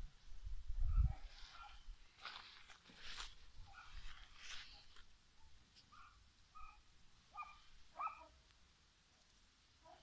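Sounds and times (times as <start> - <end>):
dog barking faintly: 0.9 - 1.9, 3.6 - 8.4, 9.8 - 10.0.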